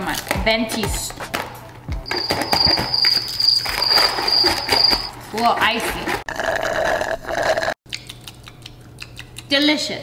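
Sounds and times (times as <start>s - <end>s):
crickets chirping: 2.0s - 5.1s.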